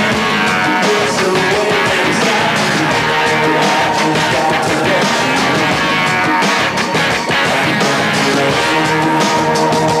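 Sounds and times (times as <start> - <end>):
guitar-driven rock song: 0.0 - 10.0.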